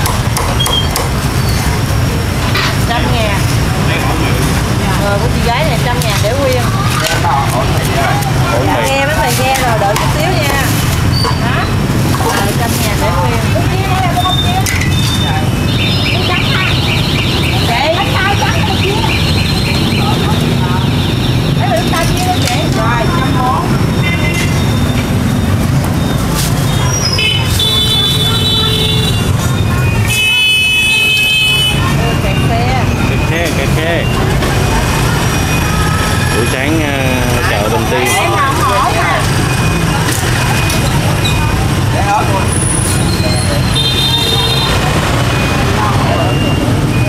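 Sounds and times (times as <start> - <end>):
motorbike engines running: 0.0 - 47.0
street traffic: 0.0 - 47.0
people talking: 1.6 - 47.0
horn beeping: 13.5 - 47.0.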